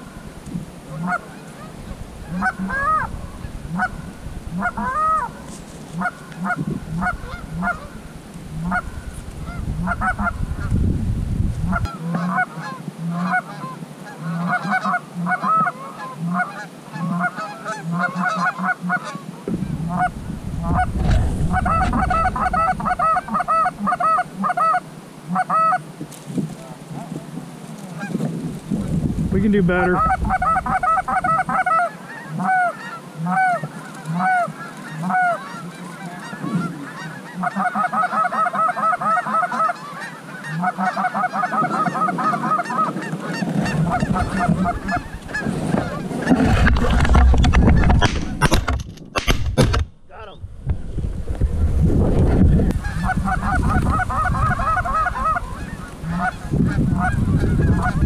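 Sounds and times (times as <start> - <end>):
wind rumble on microphone: 0.0 - 12.2, 19.4 - 25.0, 25.9 - 31.8, 36.2 - 37.0, 41.4 - 58.0
geese honking: 0.9 - 10.7, 11.7 - 25.9, 26.5 - 28.3, 29.4 - 48.6, 52.3 - 58.0.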